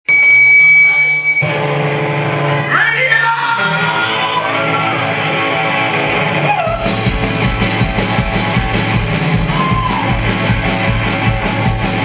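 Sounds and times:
live band music: 0.8s - 12.0s.

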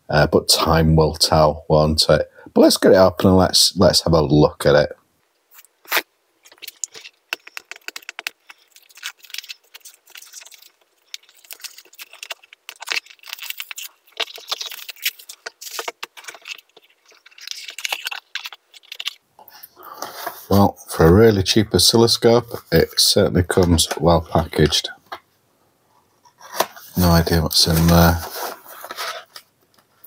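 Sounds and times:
plastic wrap crinkling: 5.5s - 19.3s, 26.3s - 30.0s.

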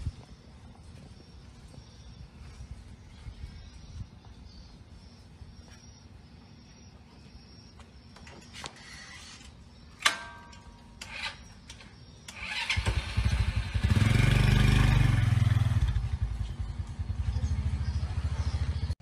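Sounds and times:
motorcycle engine revving and idling: 11.0s - 19.0s.

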